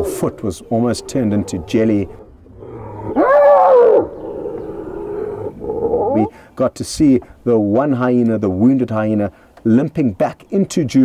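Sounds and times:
hyena yelling: 0.0s - 6.3s
hyena moaning: 0.0s - 6.4s.

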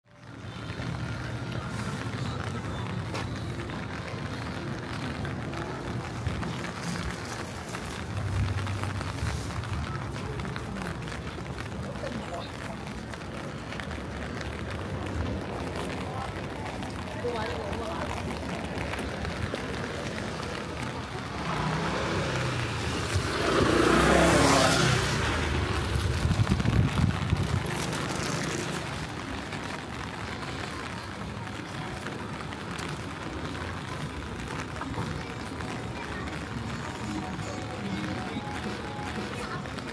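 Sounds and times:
rain pattering on an umbrella: 0.0s - 39.9s
motor scooter passing: 17.8s - 31.0s.

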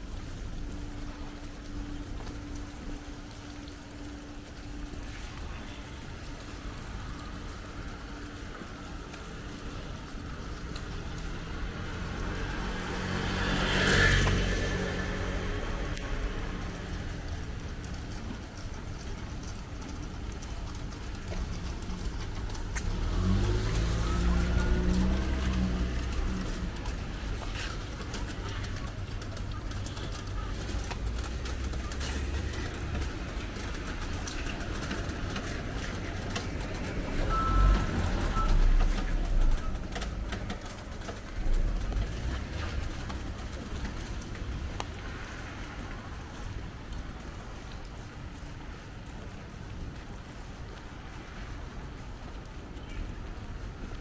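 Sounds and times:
low traffic rumble: 0.0s - 54.0s
vehicle passing: 9.6s - 18.7s, 19.9s - 48.5s.

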